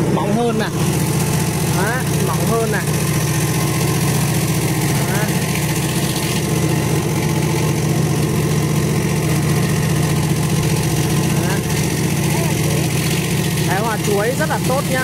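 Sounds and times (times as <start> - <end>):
slicing machine humming: 0.0 - 15.0.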